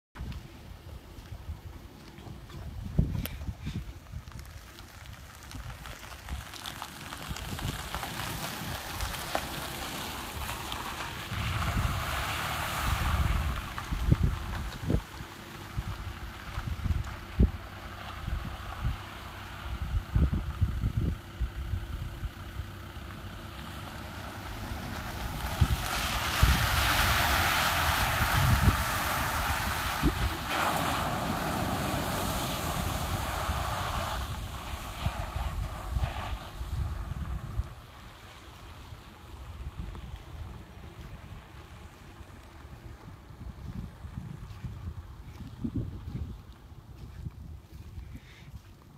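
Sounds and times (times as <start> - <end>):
wind rumble on microphone: 0.1 - 48.9
car splashing through water: 4.3 - 20.3, 22.6 - 43.4.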